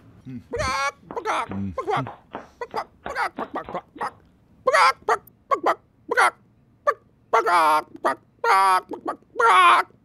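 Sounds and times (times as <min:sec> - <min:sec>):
person imitating chicken clucks: 0:00.2 - 0:10.0.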